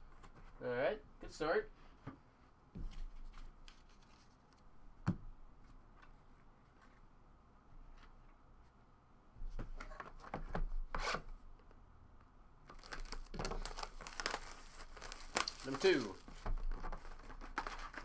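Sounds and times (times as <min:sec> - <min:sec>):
plastic wrap crinkling: 0:12.7 - 0:18.0.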